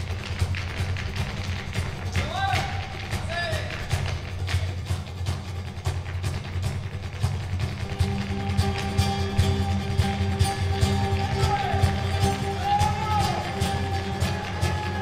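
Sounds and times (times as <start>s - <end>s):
flamenco footwork: 0.0s - 15.0s
hand claps: 0.0s - 15.0s.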